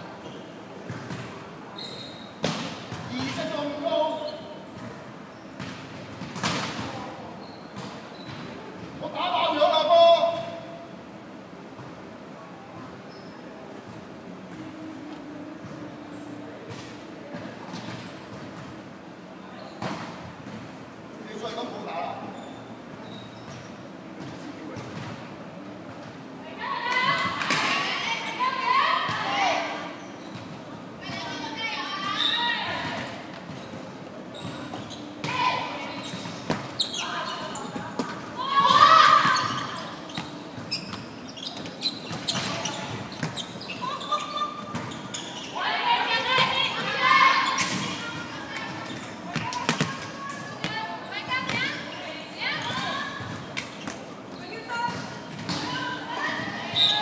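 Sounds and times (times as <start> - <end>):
players calling and shouting: 0.0 - 57.0.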